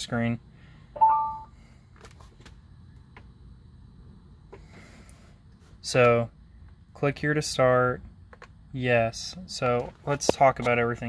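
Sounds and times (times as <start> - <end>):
low steady hum: 0.0 - 11.0
two-tone electronic chime: 1.0 - 1.5.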